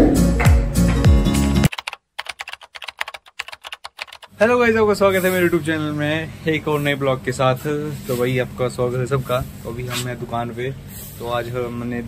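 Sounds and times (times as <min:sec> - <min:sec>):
computer keyboard typing clicks: 0:01.7 - 0:04.3.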